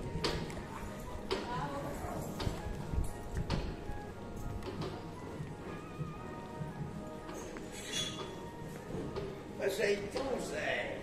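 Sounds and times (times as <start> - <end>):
street ambience: 0.0 - 11.0.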